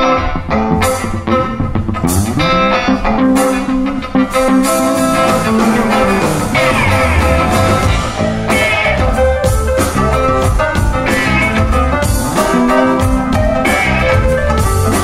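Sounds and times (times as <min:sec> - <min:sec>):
bass guitar: 0:00.0 - 0:15.0
drums: 0:00.0 - 0:15.0
electric guitars: 0:00.0 - 0:15.0.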